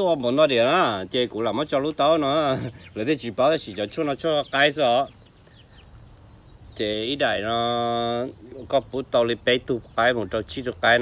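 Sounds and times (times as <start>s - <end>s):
chicken clucking: 1.3s - 8.8s.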